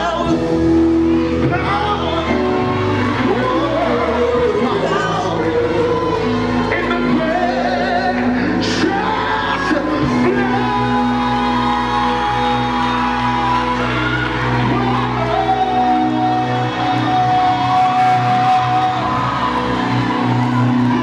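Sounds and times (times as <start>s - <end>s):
man singing into microphone: 0.0s - 20.0s
band playing worship music: 0.0s - 21.0s.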